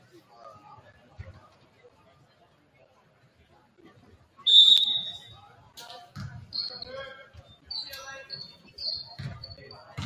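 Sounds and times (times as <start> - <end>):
referee's whistle blast: 4.5 - 5.3.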